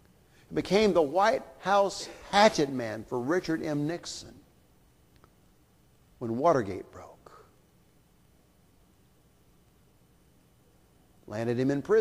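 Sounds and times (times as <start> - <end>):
man speaking: 0.5 - 4.4, 6.2 - 7.6, 11.3 - 12.0.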